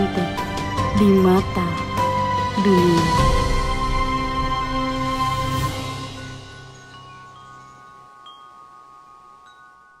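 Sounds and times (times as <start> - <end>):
background music: 0.0 - 9.6
chimes ringing: 6.0 - 10.0.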